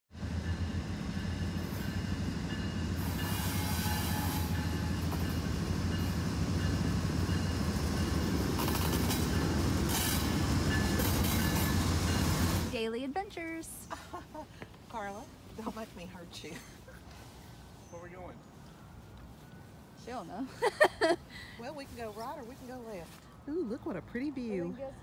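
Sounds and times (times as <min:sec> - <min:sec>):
locomotive engines droning: 0:00.1 - 0:25.0
wheels squealing on rails: 0:00.4 - 0:12.7.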